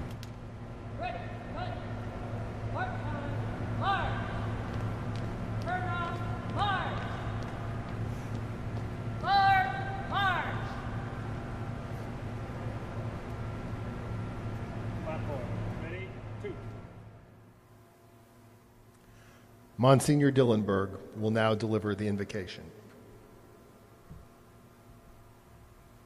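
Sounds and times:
steady low hum: 0.0s - 26.0s
person shouting commands: 2.7s - 4.5s, 5.6s - 7.4s, 9.2s - 11.0s.

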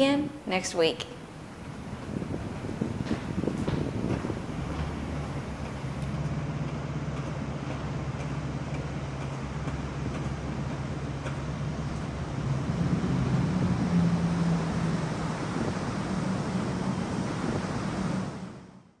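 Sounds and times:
wind noise: 0.0s - 6.2s, 11.7s - 18.5s
low engine drone: 1.2s - 18.9s.

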